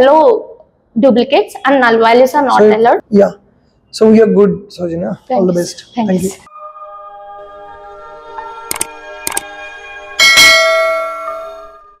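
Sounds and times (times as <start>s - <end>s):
bright bell ding: 10.2s - 11.8s.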